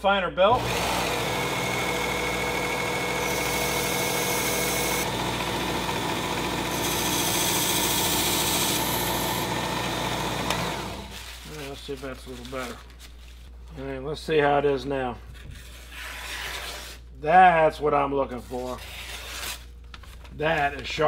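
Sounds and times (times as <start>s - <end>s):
belt sharpener motor running: 0.6s - 11.2s.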